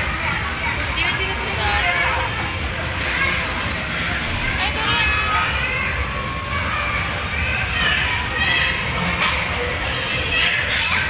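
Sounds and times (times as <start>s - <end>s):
babble of voices: 0.0s - 11.0s
crowd noise rumble: 0.0s - 11.0s.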